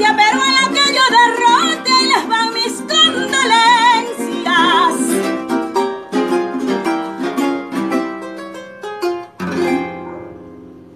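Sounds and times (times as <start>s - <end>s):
plucked harp notes: 4.6s - 10.9s.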